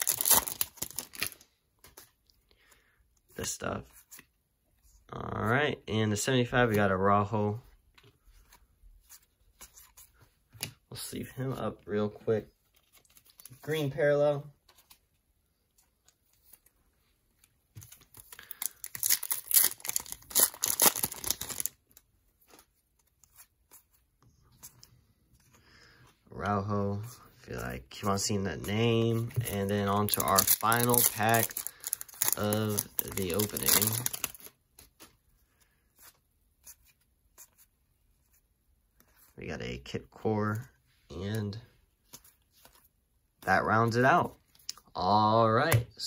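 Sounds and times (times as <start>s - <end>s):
foil wrapper crinkling: 0.0s - 1.4s, 18.2s - 21.8s, 29.4s - 34.5s.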